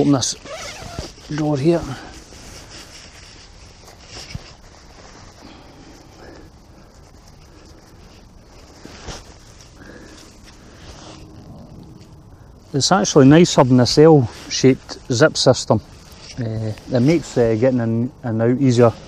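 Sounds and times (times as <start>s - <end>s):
tent zip being undone: 0.0s - 6.4s, 8.1s - 12.2s
fabric rustling: 0.0s - 18.1s.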